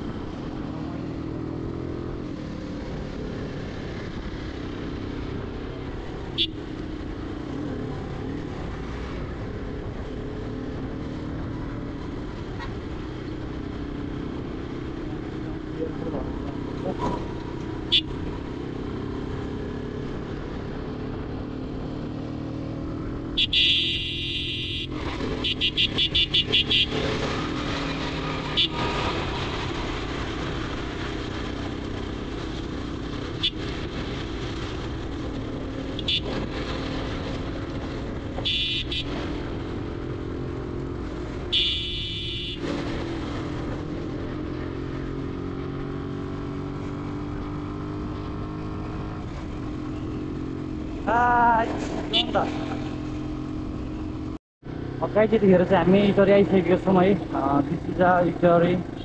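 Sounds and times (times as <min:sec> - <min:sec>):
motorcycle engine running: 0:00.0 - 0:59.0
wind and road noise: 0:00.0 - 0:59.0
vehicle horn honks: 0:06.4 - 0:06.6, 0:17.9 - 0:18.1, 0:23.4 - 0:27.1, 0:28.5 - 0:28.8, 0:36.0 - 0:36.4, 0:38.4 - 0:39.1, 0:41.5 - 0:42.6.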